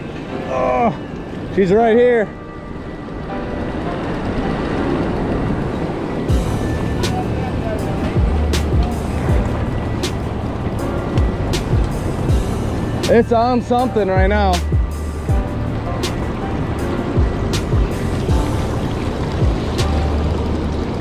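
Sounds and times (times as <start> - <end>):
rushing river water: 0.0 - 21.0
wind noise on microphone: 2.6 - 21.0
music with deep bass beat: 6.3 - 21.0.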